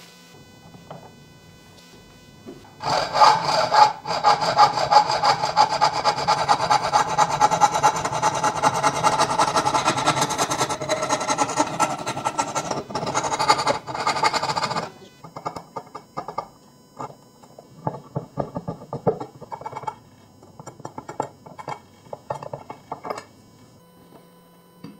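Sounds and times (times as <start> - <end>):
hacksaw cutting wood: 2.8 - 16.4.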